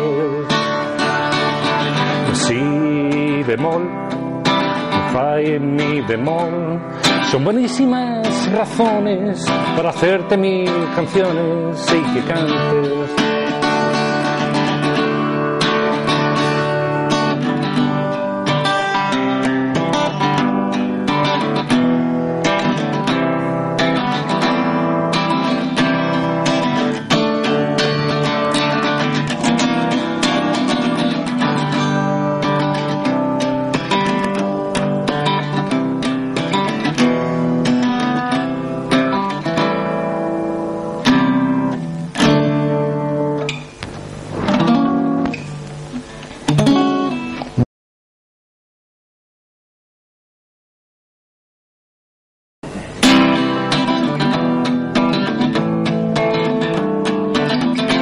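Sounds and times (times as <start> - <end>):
acoustic guitar strumming and plucking: 0.0 - 47.7, 52.6 - 58.0.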